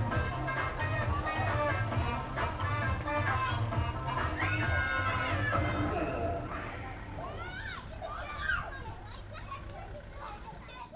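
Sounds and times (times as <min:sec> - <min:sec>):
young children calling and chattering: 0:00.0 - 0:10.9.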